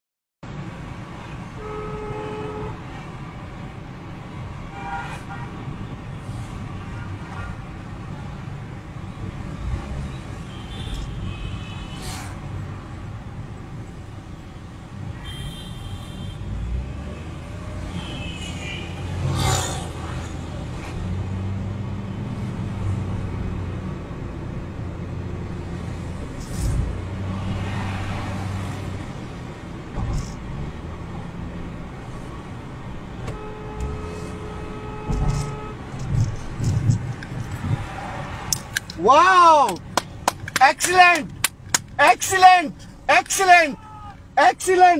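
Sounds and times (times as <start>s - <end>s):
engine and tyre rumble: 0.4s - 44.4s
car horn toots: 1.6s - 2.8s, 15.2s - 16.4s, 17.9s - 19.1s, 33.2s - 36.3s.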